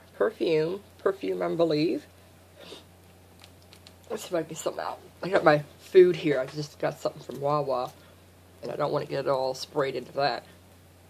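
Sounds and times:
low room hum: 0:00.0 - 0:11.0
soft rustle of packaging: 0:03.0 - 0:04.2.

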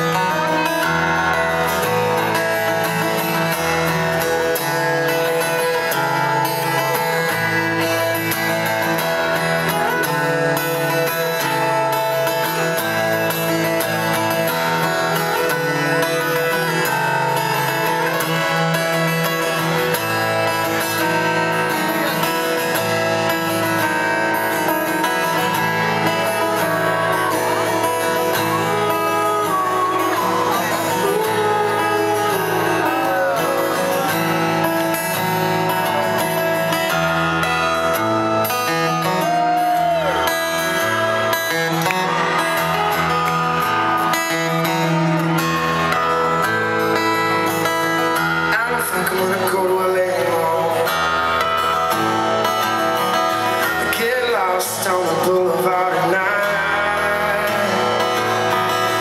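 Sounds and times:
acoustic guitar strummed and picked: 0:00.0 - 0:59.0.

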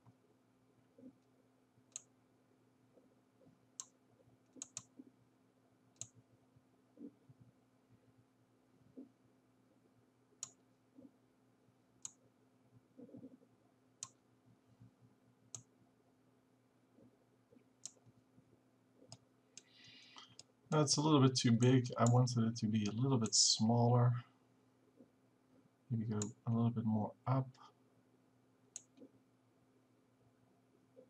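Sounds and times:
faint steady hum: 0:00.0 - 0:31.0
mouse clicks: 0:01.9 - 0:02.1, 0:03.8 - 0:05.0, 0:14.0 - 0:14.2, 0:28.8 - 0:29.1.

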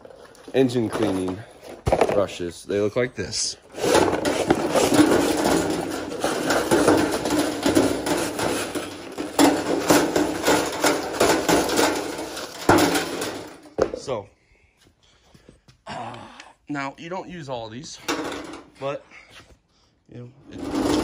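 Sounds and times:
wire brushes clattering on metal tray: 0:03.9 - 0:13.6.

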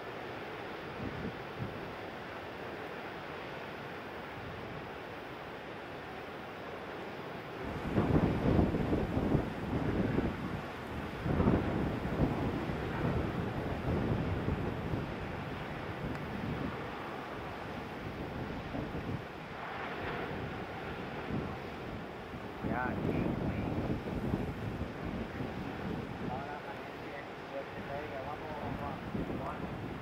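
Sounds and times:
ocean surf: 0:00.0 - 0:30.0
wind buffeting microphone: 0:07.6 - 0:30.0.

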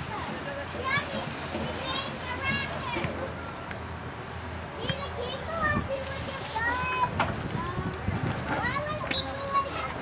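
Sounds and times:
open-air ambience: 0:00.0 - 0:10.0.

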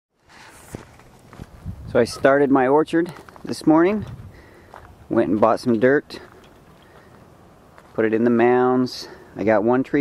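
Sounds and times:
steady outdoor hiss: 0:00.2 - 0:10.0
man speaking: 0:01.9 - 0:04.1, 0:05.1 - 0:06.4, 0:07.9 - 0:10.0.

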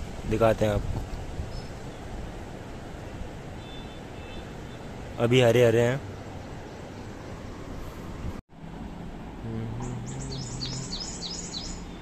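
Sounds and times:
small bird chirping: 0:09.8 - 0:12.0.

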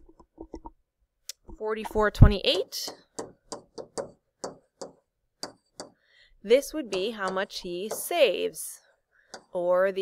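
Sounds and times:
stylus tapping on tablet screen: 0:01.3 - 0:06.0, 0:06.8 - 0:08.4, 0:09.3 - 0:09.6.

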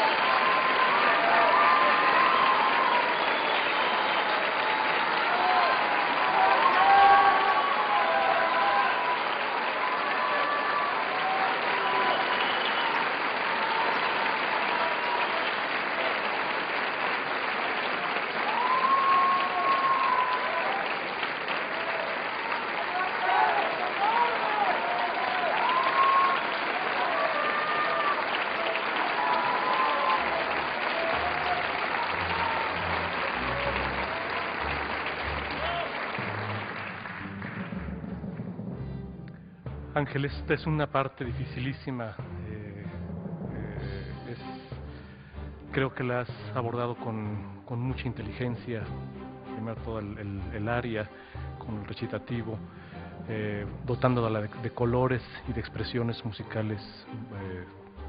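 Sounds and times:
shouts and cheers: 0:00.0 - 0:16.6, 0:17.6 - 0:36.4
audience applauding: 0:00.0 - 0:38.8.

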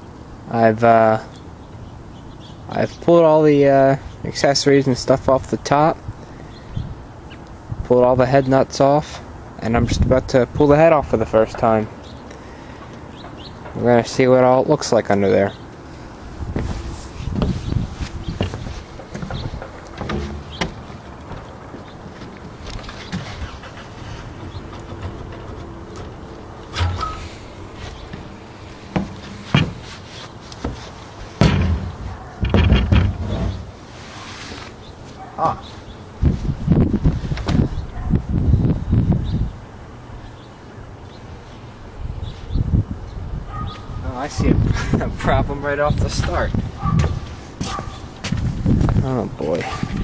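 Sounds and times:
metal clunks and knocks: 0:18.4 - 0:23.8, 0:24.4 - 0:27.3, 0:28.9 - 0:29.9, 0:31.4 - 0:33.8.

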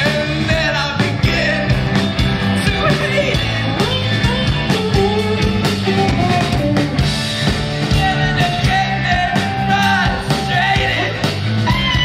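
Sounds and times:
drum kit: 0:00.0 - 0:12.0
electric bass: 0:00.0 - 0:12.0
guitar: 0:00.0 - 0:12.0
person singing: 0:02.6 - 0:06.6, 0:07.8 - 0:12.0.

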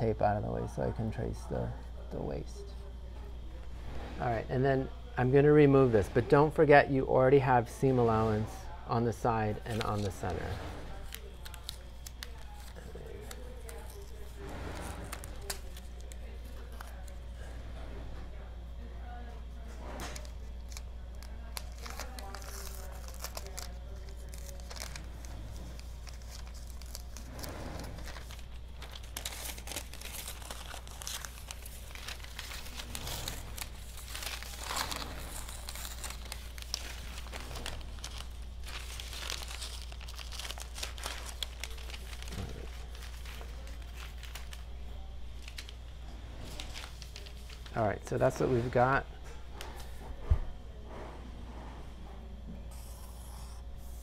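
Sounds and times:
low steady hum: 0:00.0 - 0:54.0
paper rustling and crinkling: 0:09.5 - 0:17.8, 0:19.1 - 0:48.8
tape tearing: 0:20.0 - 0:44.6.

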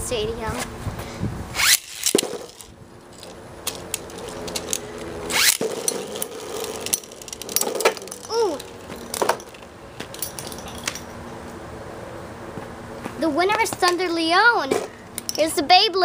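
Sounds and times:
spinning tops clicking together: 0:01.6 - 0:09.6
spinning tops whirring: 0:01.6 - 0:09.7
ripcord pulls: 0:01.6 - 0:11.0.

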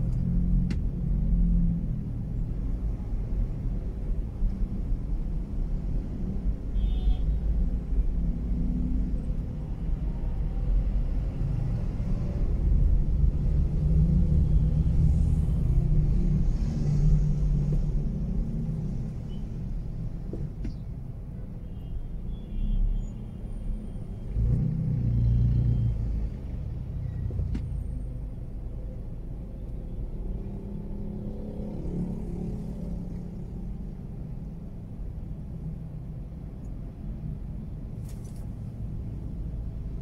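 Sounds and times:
car engine and road rumble: 0:00.0 - 0:40.0.

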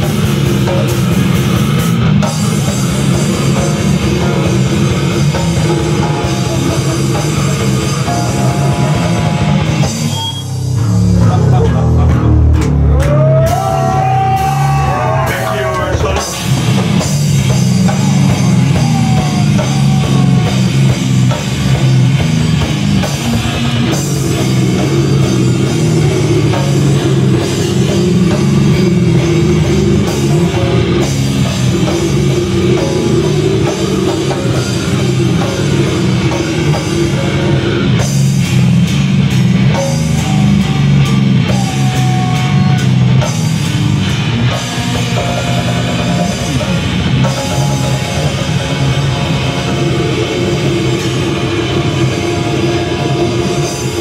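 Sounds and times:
heavy metal band playing live: 0:00.0 - 0:54.0.

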